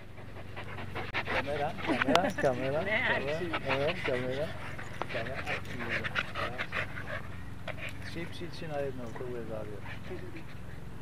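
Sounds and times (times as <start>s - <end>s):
dogs panting rapidly: 0.0s - 11.0s.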